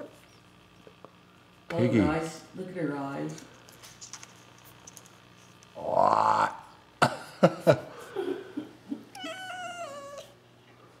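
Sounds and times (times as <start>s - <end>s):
cat meowing: 9.1s - 10.4s.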